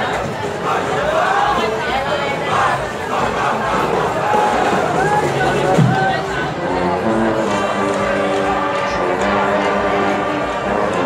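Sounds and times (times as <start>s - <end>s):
crowd shouting and cheering: 0.0s - 11.0s.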